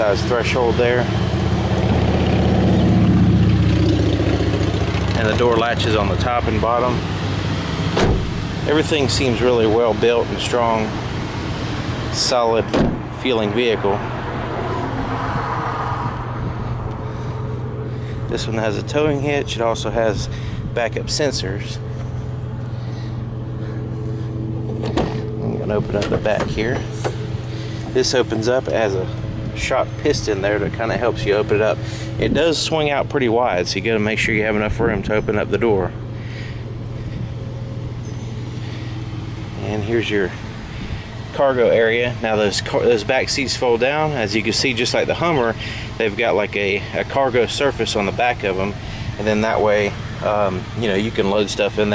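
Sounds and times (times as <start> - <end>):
road traffic hum: 0.0 - 51.9
vehicle passing by: 0.0 - 51.9.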